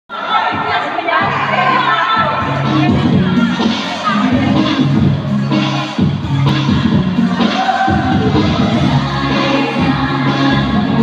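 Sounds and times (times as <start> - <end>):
people shouting and cheering: 0.1 - 11.0
dance music with a beat: 0.2 - 11.0.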